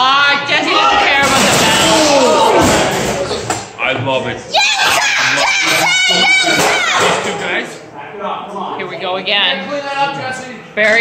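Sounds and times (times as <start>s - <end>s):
spectators yelling and screaming: 4.5s - 7.2s.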